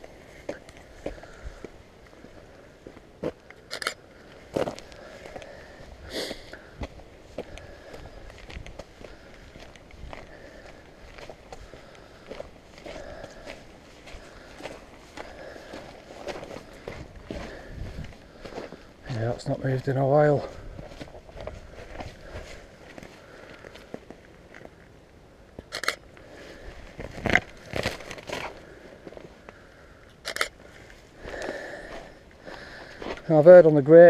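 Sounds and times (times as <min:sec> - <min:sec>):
footsteps on muddy gravel: 0:00.0 - 0:24.8, 0:25.7 - 0:29.7, 0:30.3 - 0:34.0.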